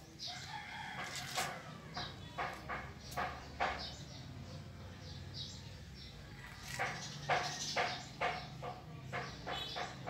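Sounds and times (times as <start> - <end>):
rooster crowing: 0.3 - 1.9.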